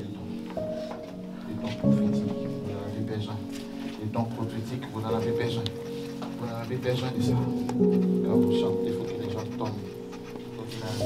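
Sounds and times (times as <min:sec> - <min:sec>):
sustained keyboard chords: 0:00.0 - 0:11.0.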